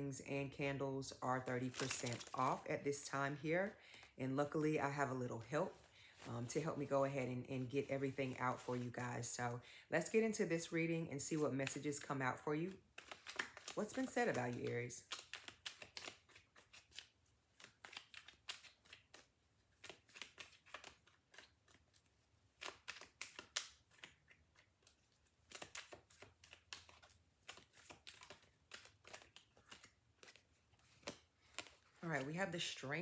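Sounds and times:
cards being shuffled: 0:01.4 - 0:03.0, 0:12.7 - 0:32.8.

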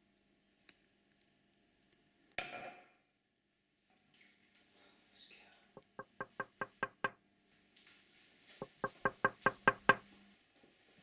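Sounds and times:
rapid knocking on a door: 0:05.8 - 0:07.2, 0:08.6 - 0:10.0.

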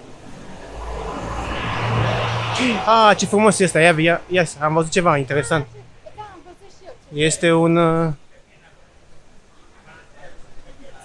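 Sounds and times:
bus engine and tyres passing: 0:00.0 - 0:11.0.

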